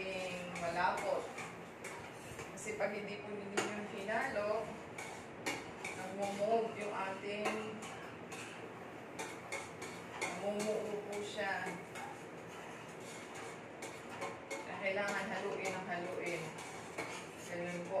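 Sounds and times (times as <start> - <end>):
metal utensil scraping saucepan: 0.0 - 2.5, 3.6 - 8.6, 9.2 - 18.0.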